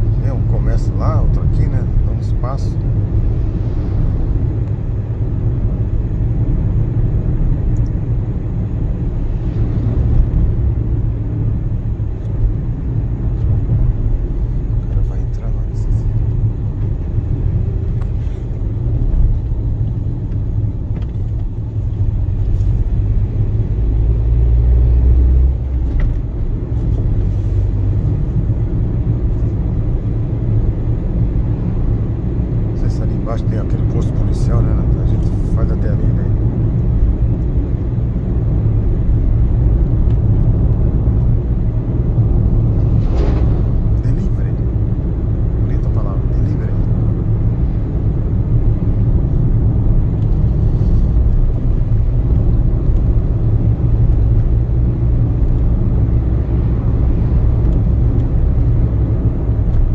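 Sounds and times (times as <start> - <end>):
car engine and tyre rumble: 0.0 - 59.9.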